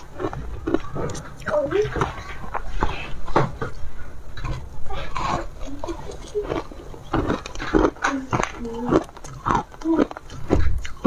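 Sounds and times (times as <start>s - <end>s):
chewing ice with crunches: 0.0s - 11.0s
biting ice: 4.9s - 11.0s.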